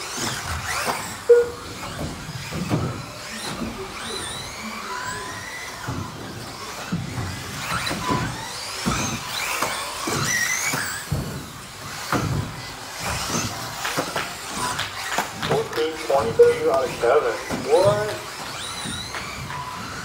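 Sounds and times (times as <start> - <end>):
rc car motors whining: 0.0 - 20.0
rc cars landing thuds: 0.0 - 20.0.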